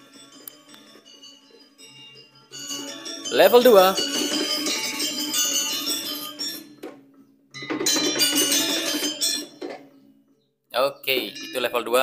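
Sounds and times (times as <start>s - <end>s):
gamelan music from small speaker: 0.0s - 10.2s, 11.0s - 12.0s.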